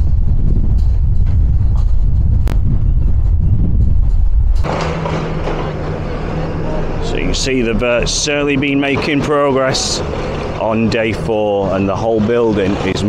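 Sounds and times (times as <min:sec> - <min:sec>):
wind buffeting microphone: 0:00.0 - 0:13.0
excavator engine hum: 0:03.1 - 0:13.0.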